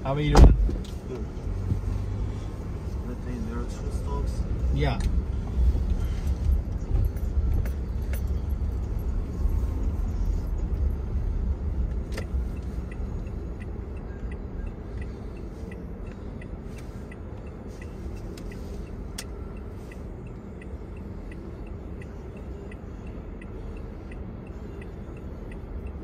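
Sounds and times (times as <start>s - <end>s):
cars moving nearby: 0.0s - 26.0s
road traffic rumble: 0.0s - 26.0s.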